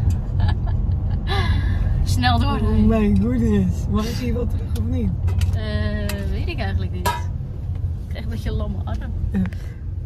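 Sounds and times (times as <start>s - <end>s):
car driving rumble: 0.0s - 10.0s
women laughing and gasping: 0.5s - 2.0s.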